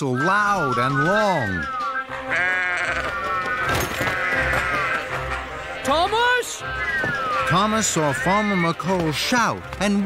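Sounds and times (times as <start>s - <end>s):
cartoon background music: 0.0s - 10.0s
sheep bleating: 2.0s - 8.8s.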